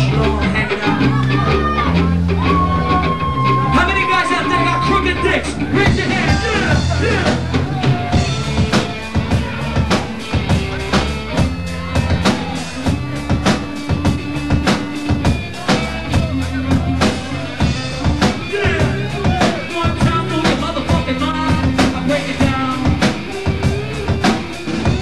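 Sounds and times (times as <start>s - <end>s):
bass guitar line: 0.0s - 25.0s
drum kit beat: 0.0s - 25.0s.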